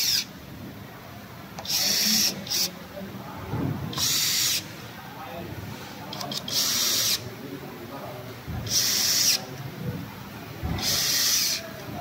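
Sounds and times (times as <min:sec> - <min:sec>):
cordless drill-driver burst: 0:00.0 - 0:00.2, 0:01.6 - 0:02.7, 0:04.0 - 0:04.6, 0:06.4 - 0:07.2, 0:08.7 - 0:09.4, 0:10.8 - 0:11.6.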